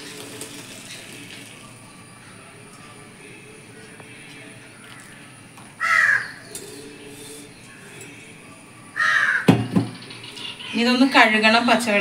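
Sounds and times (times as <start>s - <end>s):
crow cawing: 5.8s - 6.4s, 9.0s - 9.5s.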